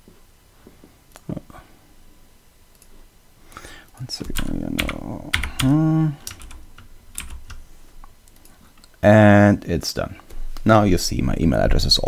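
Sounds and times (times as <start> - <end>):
computer keyboard keys clicking: 4.2 - 7.6
person humming: 4.8 - 6.4.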